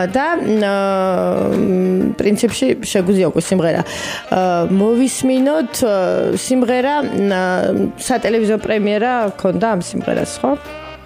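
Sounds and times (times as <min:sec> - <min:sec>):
person talking: 0:00.0 - 0:10.6
background music: 0:00.0 - 0:11.0.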